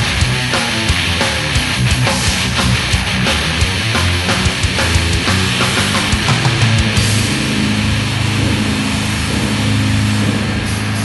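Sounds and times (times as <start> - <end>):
death metal distorted guitars and bass: 0.0 - 11.0.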